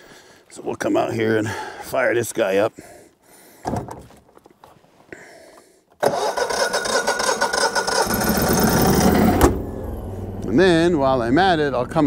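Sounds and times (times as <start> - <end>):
generator engine running: 7.0 - 12.0.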